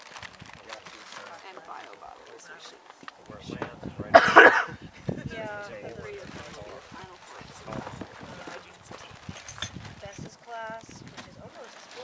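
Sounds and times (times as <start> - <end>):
people talking indistinctly: 0.5 - 12.0.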